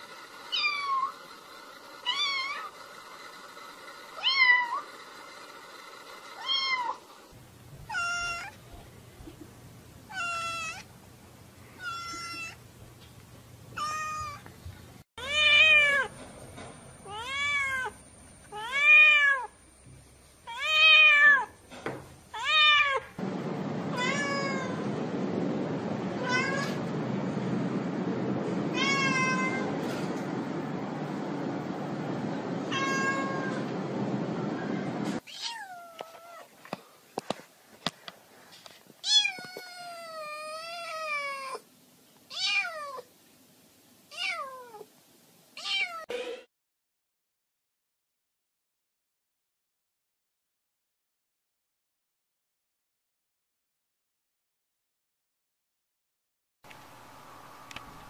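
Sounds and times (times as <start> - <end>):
cats meowing: 7.9 - 8.6, 11.8 - 12.6, 13.8 - 14.4, 15.2 - 16.1, 17.0 - 19.5, 28.7 - 29.8, 32.6 - 33.7, 35.2 - 36.5, 39.0 - 41.6
steady rushing noise: 23.2 - 35.2.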